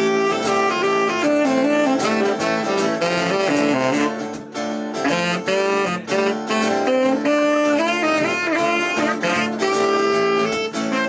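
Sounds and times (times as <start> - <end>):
saxophone melody: 0.0 - 11.0
strummed acoustic guitar: 0.0 - 11.0.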